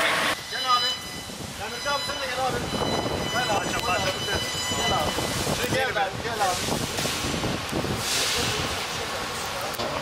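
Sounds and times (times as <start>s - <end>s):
indistinct voices talking: 0.4s - 7.2s
background noise haze: 5.0s - 10.0s.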